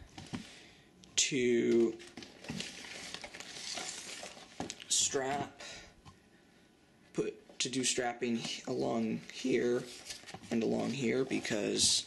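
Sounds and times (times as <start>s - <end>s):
foil-covered plates rustling and clicking: 1.7s - 4.9s.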